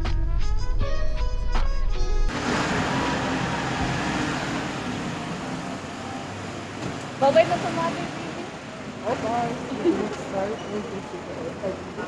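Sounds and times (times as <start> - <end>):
road traffic hiss and rumble: 2.3 - 12.0.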